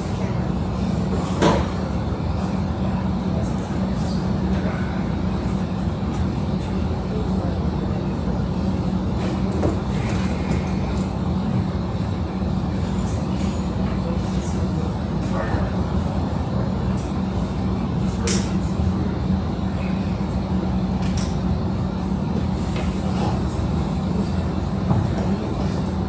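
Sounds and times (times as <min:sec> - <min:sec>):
faint background chatter: 0:00.0 - 0:26.0
low room hum: 0:00.0 - 0:26.0.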